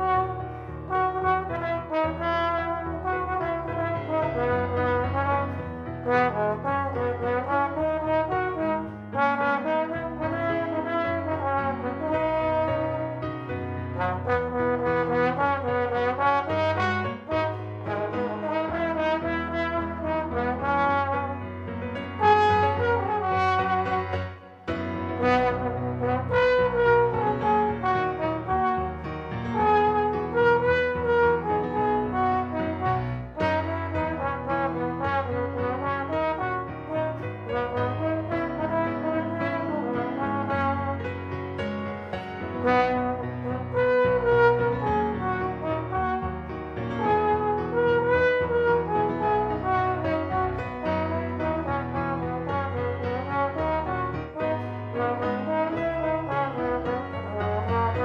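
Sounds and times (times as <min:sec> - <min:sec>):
piano and bass accompaniment: 0:00.0 - 0:58.0
slide trombone melody: 0:00.0 - 0:58.0.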